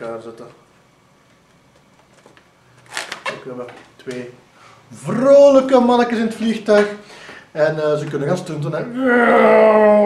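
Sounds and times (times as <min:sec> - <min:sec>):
man speaking: 0:03.3 - 0:09.6.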